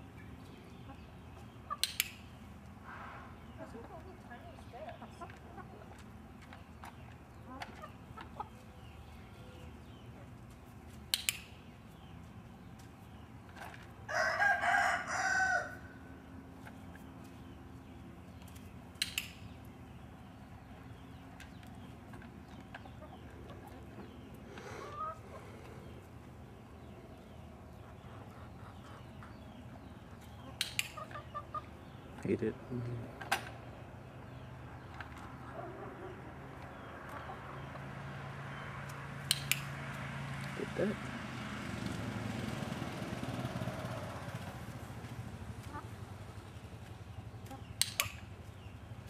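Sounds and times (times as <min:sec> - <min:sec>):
chickens clucking: 0:00.3 - 0:11.1, 0:16.2 - 0:38.0, 0:43.0 - 0:49.0
training clicker clicks: 0:01.8 - 0:02.2, 0:19.0 - 0:19.4, 0:30.6 - 0:31.0, 0:39.2 - 0:39.7, 0:47.8 - 0:48.2
rooster crowing: 0:14.1 - 0:16.0
sharp double click: 0:19.0 - 0:19.4
hens clucking softly: 0:22.1 - 0:26.1, 0:27.7 - 0:31.8.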